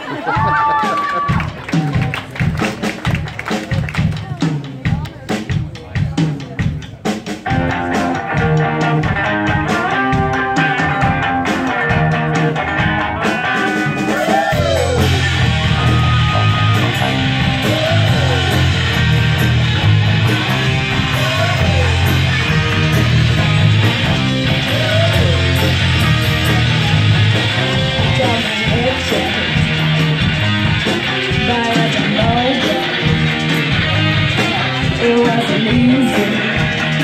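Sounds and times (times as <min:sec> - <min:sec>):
live rock band: 0:00.0 - 0:37.0
sustained guitar notes: 0:07.5 - 0:37.0.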